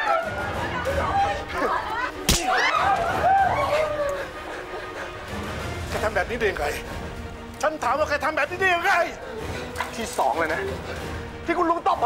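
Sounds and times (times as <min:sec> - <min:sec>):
people shouting and gasping: 0:00.0 - 0:05.4.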